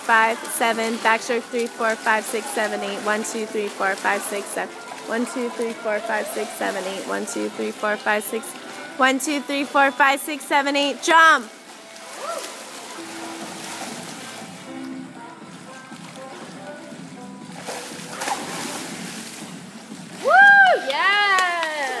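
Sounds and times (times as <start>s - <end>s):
faint music: 0.0s - 22.0s
swimmers splashing water: 0.0s - 22.0s.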